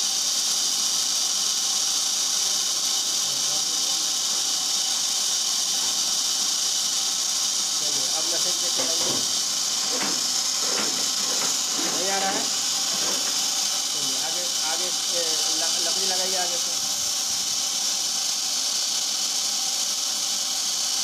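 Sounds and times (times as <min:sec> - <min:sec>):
machine running with high hiss: 0:00.0 - 0:21.0.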